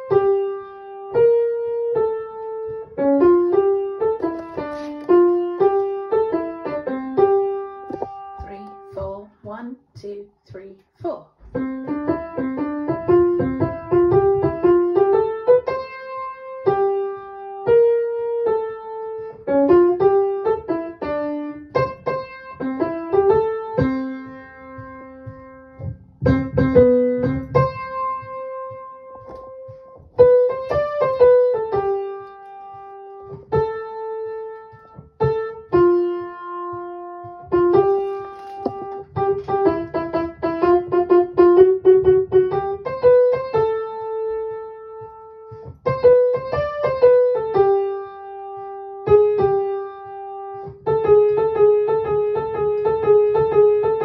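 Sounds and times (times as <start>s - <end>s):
piano melody: 0.0s - 9.6s, 11.4s - 54.0s.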